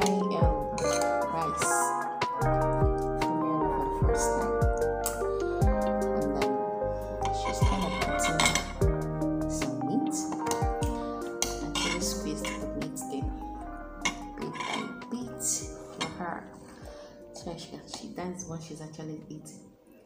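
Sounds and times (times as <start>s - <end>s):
metal spoon scraping bowl: 0.0s - 1.8s, 7.2s - 8.9s, 10.3s - 13.0s, 14.0s - 15.1s
background music with held notes: 0.0s - 20.0s.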